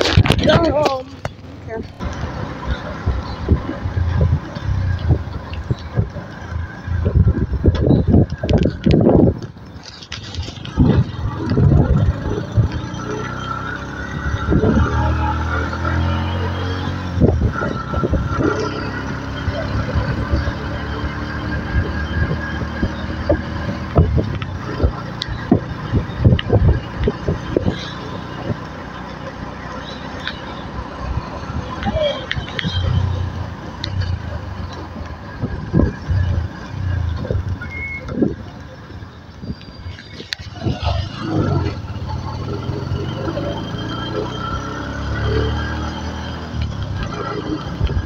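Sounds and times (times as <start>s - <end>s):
vehicle engine running: 0.0s - 48.0s.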